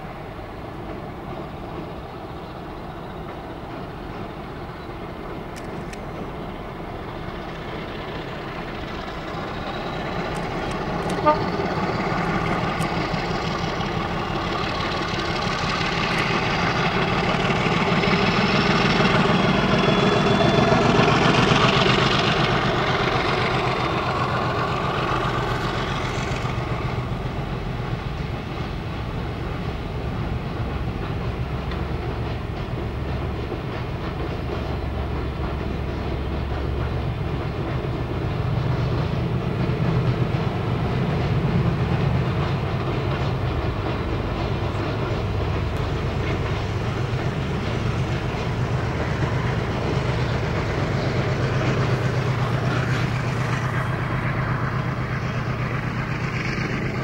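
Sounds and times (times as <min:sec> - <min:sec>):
diesel locomotive engines droning: 0:00.0 - 0:57.0
train wheels rumbling on rails: 0:00.0 - 0:57.0.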